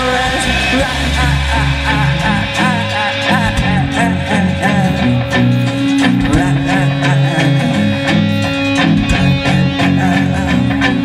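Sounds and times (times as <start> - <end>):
bass guitar: 0.0 - 11.0
drum kit: 0.0 - 11.0
electric guitars: 0.0 - 11.0.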